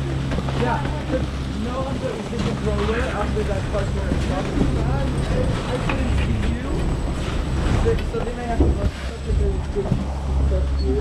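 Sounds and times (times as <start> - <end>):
chairlift machinery rumble: 0.0 - 11.0
people's voices: 0.0 - 11.0.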